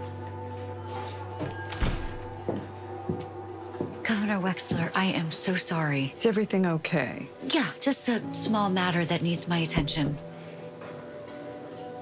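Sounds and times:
footsteps on hard floor: 0:00.0 - 0:05.2.

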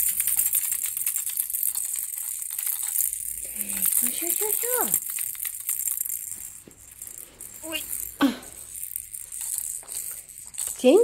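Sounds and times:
baby rattle shaking: 0:00.0 - 0:11.0.

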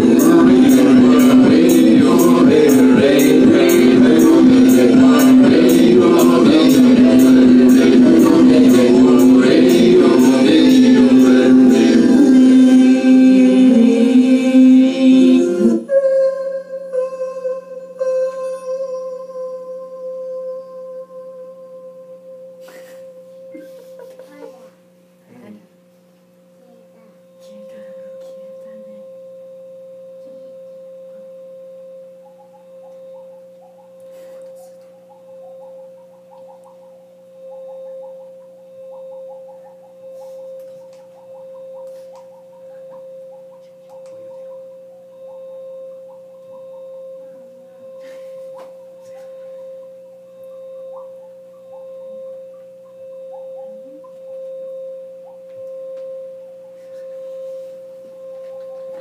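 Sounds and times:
electronic drone: 0:00.0 - 0:24.7
low hum: 0:00.0 - 0:24.8
faint chirping blips: 0:30.2 - 0:34.1, 0:34.8 - 0:48.0, 0:48.8 - 0:55.8.

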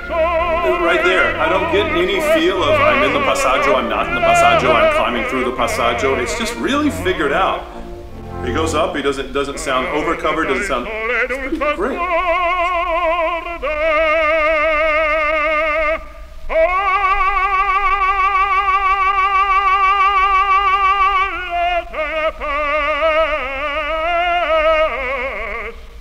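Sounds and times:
operatic baritone singing: 0:00.0 - 0:25.8.

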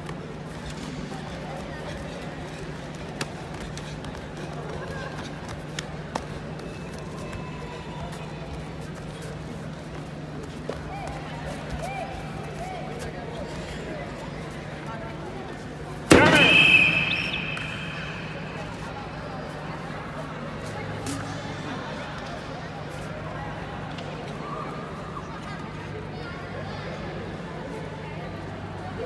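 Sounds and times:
sharp slaps of strikes: 0:16.1 - 0:18.9.

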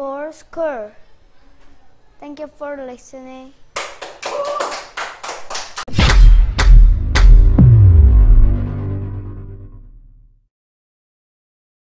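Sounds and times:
audience clapping: 0:03.8 - 0:05.9
falling sweep: 0:05.9 - 0:10.0
music sting with bass hits: 0:05.9 - 0:10.2.

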